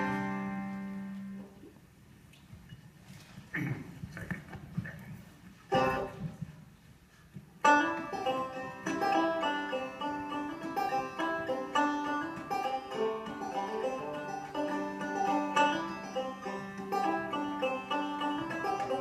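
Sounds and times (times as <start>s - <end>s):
banjo picking: 0.0s - 1.7s, 5.7s - 6.6s, 7.6s - 19.0s.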